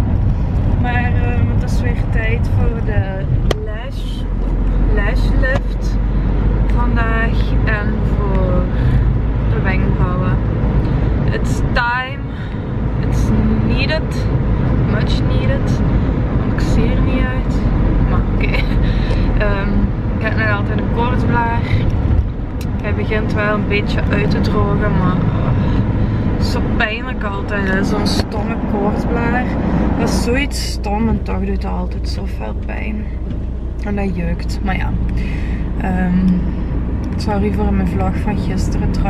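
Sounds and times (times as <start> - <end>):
car cabin rumble: 0.0 - 39.0.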